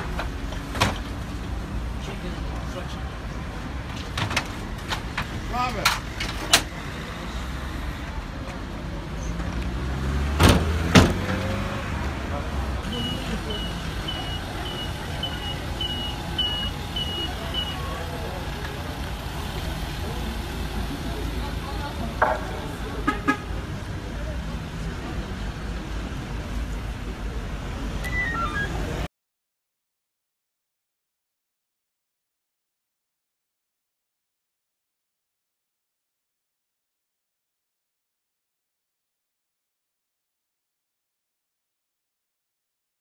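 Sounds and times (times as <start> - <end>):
vehicle doors slamming: 10.4 - 11.4
ambulance engine running: 12.4 - 24.4
short high beeps: 28.0 - 29.1.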